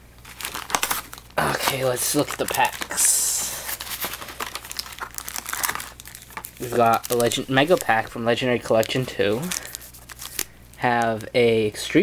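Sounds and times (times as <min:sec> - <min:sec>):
packaging crinkling and rustling: 0:00.2 - 0:11.4.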